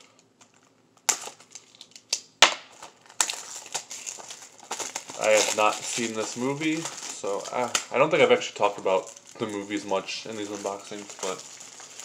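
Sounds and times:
shrink-wrap crinkling: 0:00.0 - 0:12.0.

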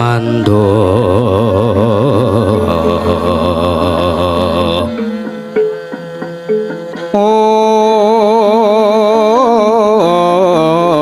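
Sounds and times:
man chanting with vibrato: 0:00.0 - 0:05.5, 0:07.1 - 0:11.0.

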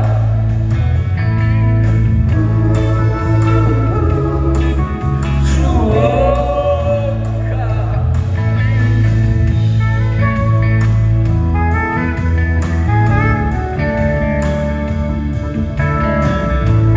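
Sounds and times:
bass line: 0:00.0 - 0:16.9
guitar: 0:00.0 - 0:16.9
man singing into microphone: 0:02.3 - 0:08.2.

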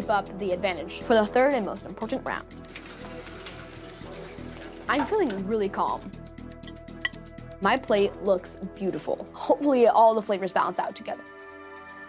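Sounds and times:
background music: 0:00.0 - 0:12.0
hot oil sizzling: 0:02.6 - 0:06.0.

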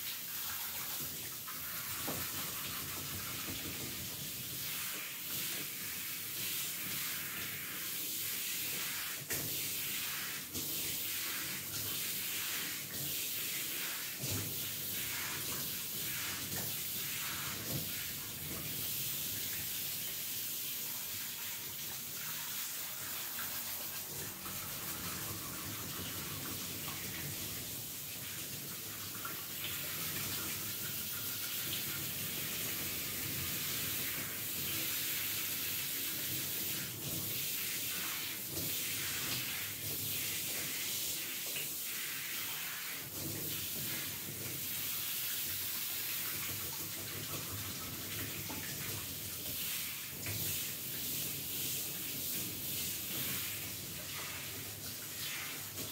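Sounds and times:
shower sprayer on wet hair: 0:00.0 - 0:55.9.

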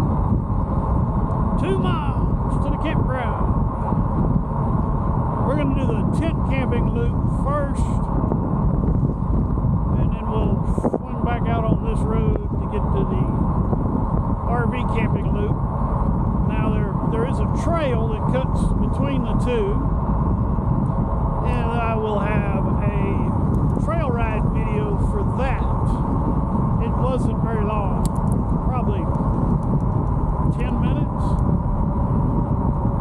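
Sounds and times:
wind and road rush: 0:00.0 - 0:33.0.

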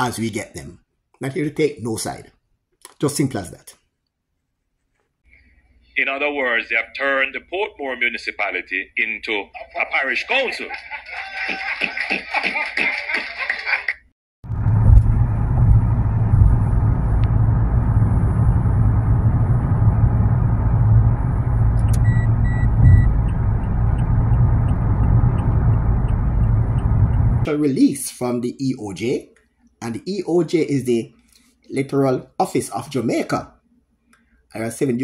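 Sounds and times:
car road and engine rumble: 0:14.4 - 0:27.5
short beeps: 0:21.9 - 0:24.1.

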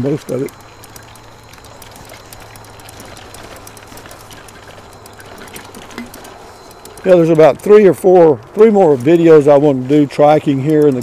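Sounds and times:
faint low motor hum: 0:00.0 - 0:11.0
small clicks and ticks: 0:00.0 - 0:11.0
tyres rolling on rough trail: 0:00.0 - 0:11.0.

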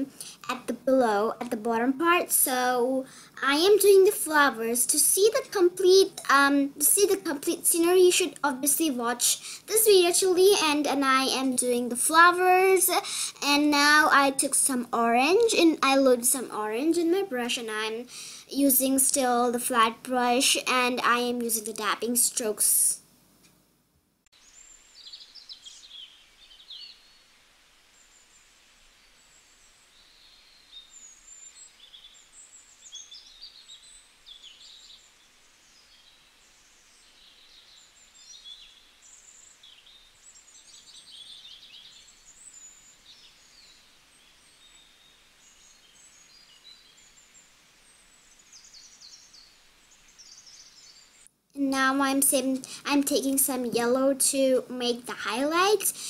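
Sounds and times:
small birds chirping: 0:00.0 - 0:23.0, 0:24.3 - 0:56.0.

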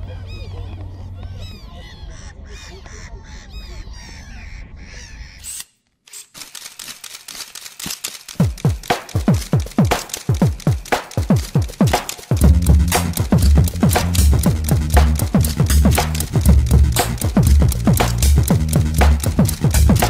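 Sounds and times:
birds calling: 0:00.0 - 0:05.6
electronic music: 0:08.4 - 0:20.0
deep kick drum beating: 0:12.4 - 0:20.0
low background rumble: 0:12.4 - 0:20.0.

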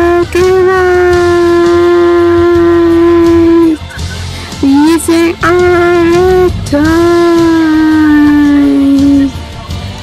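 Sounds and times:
backing music: 0:00.0 - 0:10.0.

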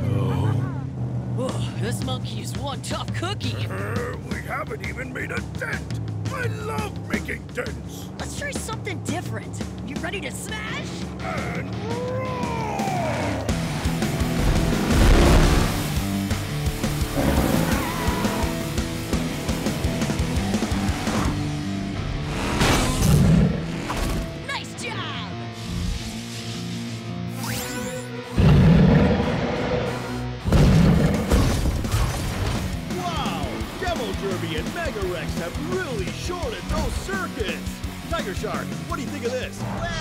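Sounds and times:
cartoon action music: 0:03.3 - 0:21.4, 0:22.3 - 0:40.0
crash and boom impacts: 0:14.3 - 0:16.1.

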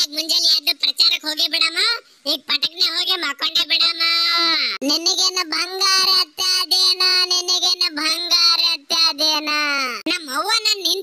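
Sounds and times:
high-pitched voice singing: 0:00.0 - 0:11.0.

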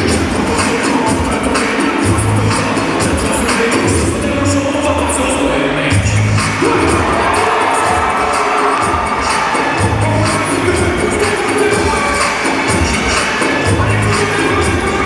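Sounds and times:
dance music with heavy bass: 0:00.0 - 0:15.0
audience cheering and shouting: 0:06.3 - 0:15.0.

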